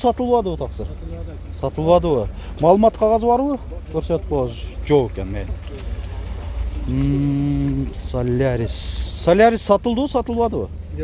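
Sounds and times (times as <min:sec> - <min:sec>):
man holding low vowel: 0:06.9 - 0:08.0.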